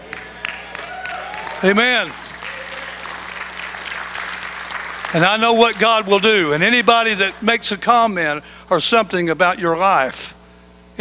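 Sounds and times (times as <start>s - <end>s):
light scattered applause: 0.0s - 7.4s
low steady hum: 0.0s - 11.0s.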